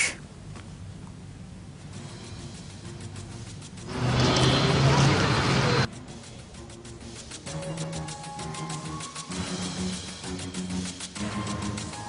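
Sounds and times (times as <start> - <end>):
vehicle engine running: 2.0 - 5.9.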